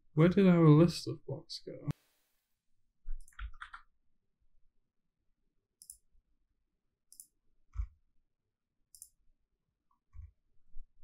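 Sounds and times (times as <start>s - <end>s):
computer mouse clicking: 5.8s - 6.1s, 7.1s - 7.9s, 8.9s - 9.2s.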